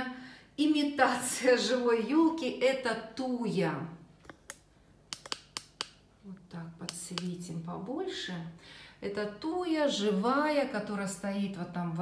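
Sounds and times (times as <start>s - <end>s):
woman speaking: 0.0s - 4.1s, 6.2s - 12.0s
sharp light clicks: 4.3s - 6.0s, 6.8s - 7.4s.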